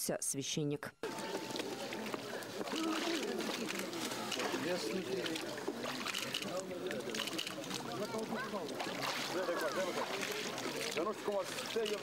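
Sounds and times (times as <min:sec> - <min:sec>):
water sloshing: 0:01.0 - 0:12.0.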